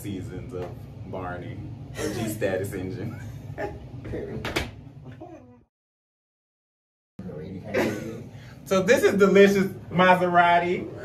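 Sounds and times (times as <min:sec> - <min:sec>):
man laughing: 0:07.6 - 0:08.3.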